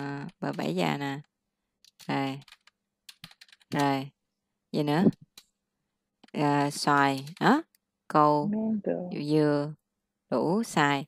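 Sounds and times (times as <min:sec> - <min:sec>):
short spoken syllable: 0:08.5 - 0:09.2.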